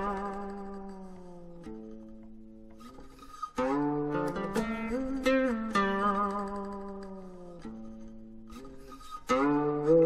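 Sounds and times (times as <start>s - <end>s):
plucked string instrument: 0.0s - 10.0s.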